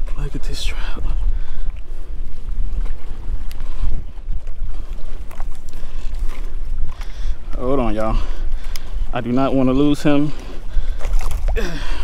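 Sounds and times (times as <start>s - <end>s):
choppy water: 0.0s - 12.0s
wind buffeting microphone: 0.0s - 12.0s.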